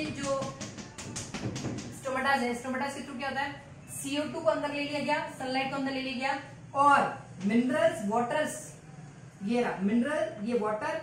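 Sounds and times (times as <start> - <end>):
chalk tapping on blackboard: 0.0 - 2.2.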